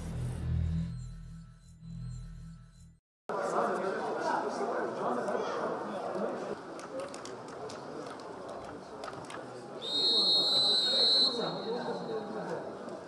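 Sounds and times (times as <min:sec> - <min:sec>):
referee's whistle blast: 0:09.8 - 0:12.1.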